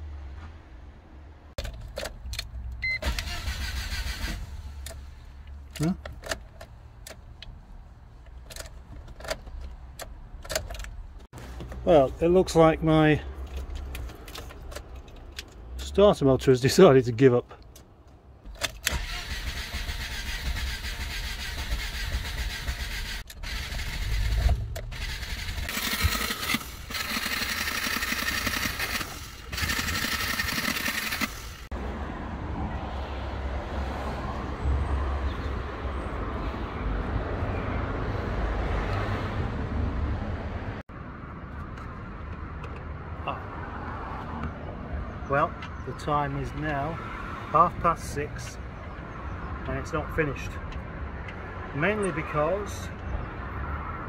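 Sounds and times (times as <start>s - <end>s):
engine cranking on starter motor: 1.6s - 5.2s, 18.5s - 31.7s.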